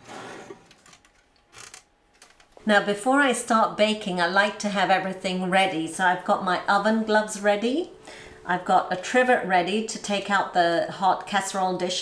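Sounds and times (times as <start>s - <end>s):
oven rack scraping: 0.0s - 0.9s.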